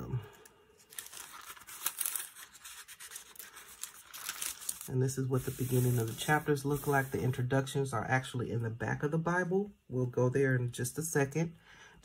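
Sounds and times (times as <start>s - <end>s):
pages being turned: 0.8s - 7.4s.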